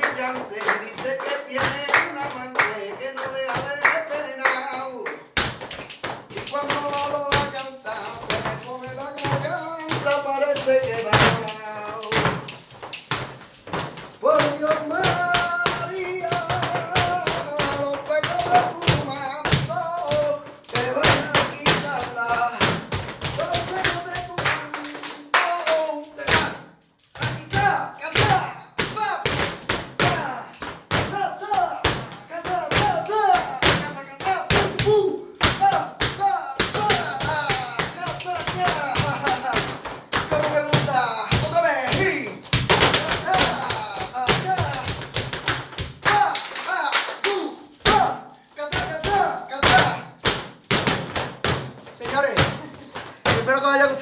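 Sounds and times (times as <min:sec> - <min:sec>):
hand claps: 0:00.0 - 0:13.8, 0:20.0 - 0:26.5, 0:41.9 - 0:48.0
dance footwork strikes: 0:00.0 - 0:54.0
flamenco music: 0:00.0 - 0:54.0
person singing: 0:06.3 - 0:12.5, 0:14.2 - 0:26.6, 0:30.0 - 0:45.4.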